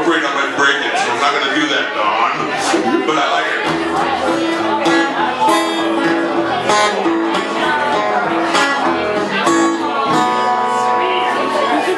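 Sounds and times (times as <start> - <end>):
acoustic guitar picked melody: 0.9 - 11.9.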